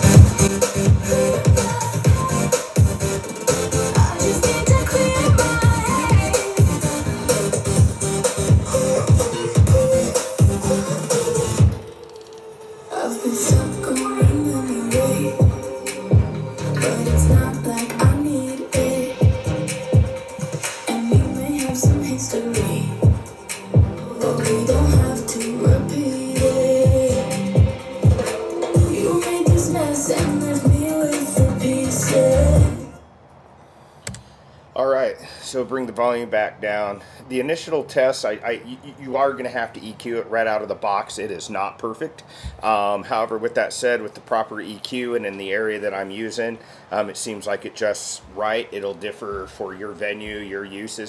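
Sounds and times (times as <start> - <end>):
deep bass kicks: 0.0 - 11.8, 13.5 - 20.2, 21.1 - 32.8
electronic dance music through speakers: 0.0 - 33.0
sustained synth tones: 2.1 - 33.0.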